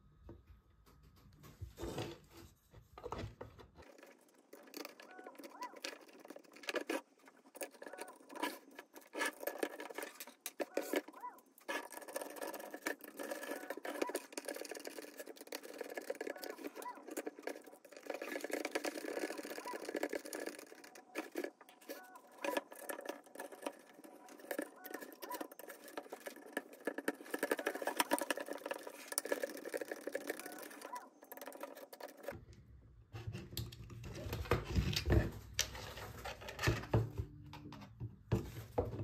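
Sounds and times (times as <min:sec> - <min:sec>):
clicks and scraping: 0:00.9 - 0:32.6, 0:33.2 - 0:39.0.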